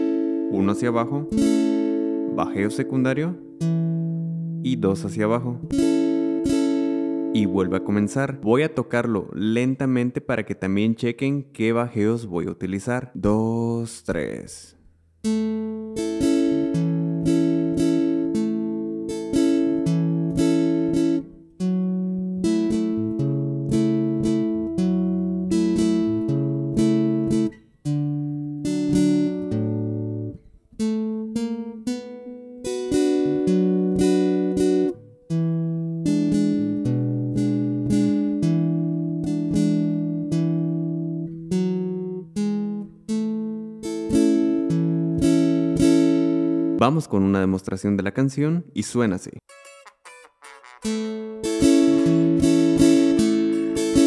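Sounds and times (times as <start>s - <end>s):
acoustic guitar strumming: 0.0s - 9.1s, 15.2s - 46.8s, 49.5s - 54.0s.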